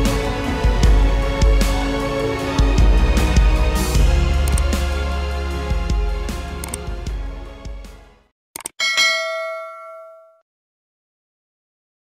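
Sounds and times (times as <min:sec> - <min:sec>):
short clicks: 0:06.6 - 0:06.8, 0:08.6 - 0:08.8
bright bell ding: 0:08.8 - 0:10.4.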